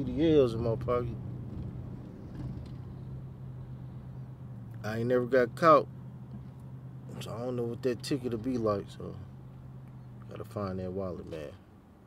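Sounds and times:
vehicle hum from inside cabin: 0:00.0 - 0:12.0.

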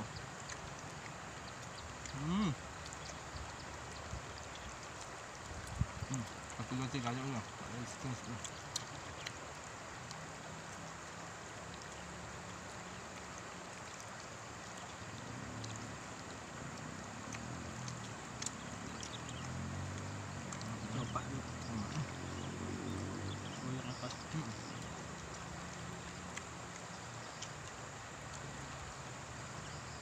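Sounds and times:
river rushing: 0:12.5 - 0:30.0.

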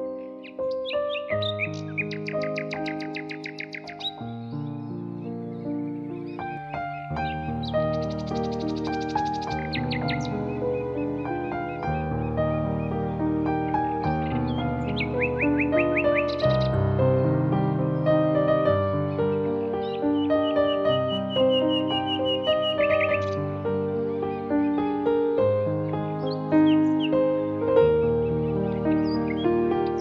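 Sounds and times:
birdsong chirps: 0:00.0 - 0:30.0
soft slow piano music: 0:00.0 - 0:30.0
songbird trilling: 0:00.1 - 0:16.8, 0:19.2 - 0:24.8, 0:25.8 - 0:27.2, 0:28.2 - 0:30.0.

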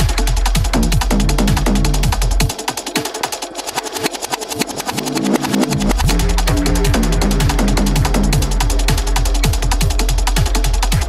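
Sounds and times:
kick drum and hi-hats beat: 0:00.0 - 0:11.0.

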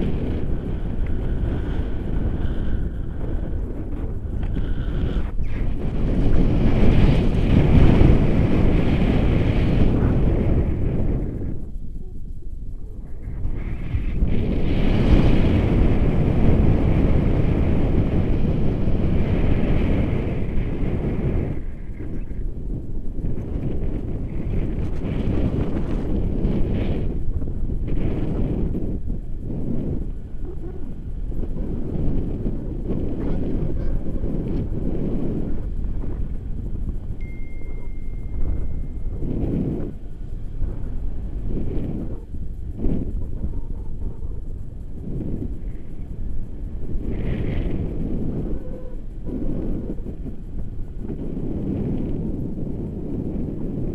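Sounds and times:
wind buffeting microphone: 0:00.0 - 0:53.9.

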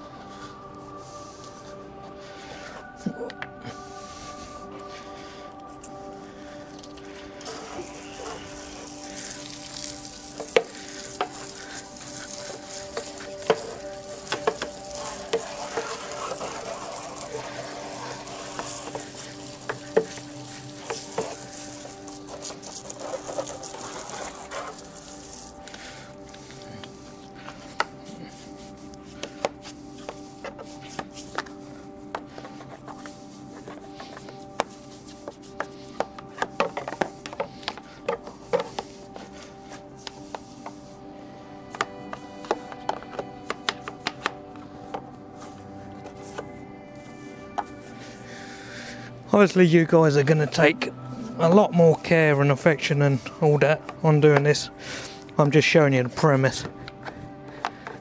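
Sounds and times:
hose spraying water: 0:03.7 - 0:58.0
scrubbing against a wheel: 0:07.4 - 0:41.0.

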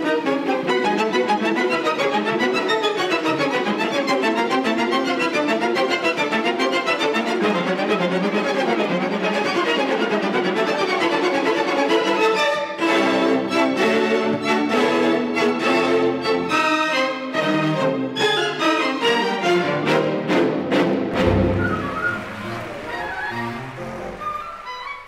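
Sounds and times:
string orchestra playing: 0:00.0 - 0:25.0.

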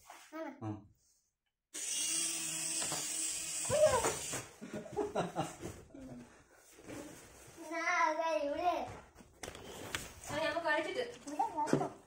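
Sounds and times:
toy helicopter motor whirring: 0:01.8 - 0:04.5.

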